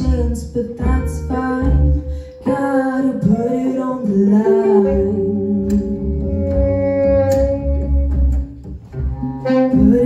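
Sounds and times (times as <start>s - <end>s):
soul-jazz band playing: 0.0s - 10.0s.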